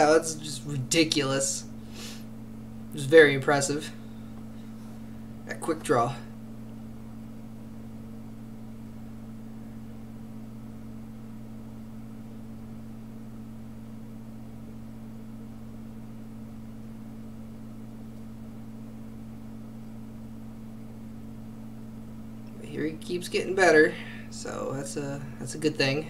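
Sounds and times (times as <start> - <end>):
steady low hum: 0.0 - 26.0.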